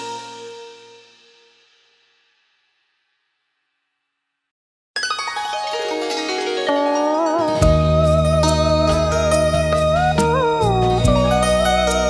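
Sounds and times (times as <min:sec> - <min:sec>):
bolero song music: 0:06.4 - 0:12.0.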